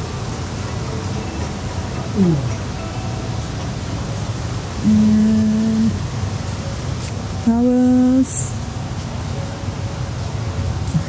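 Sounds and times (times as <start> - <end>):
shop floor background noise: 0.0 - 11.0
person humming: 2.1 - 2.8, 4.8 - 6.0.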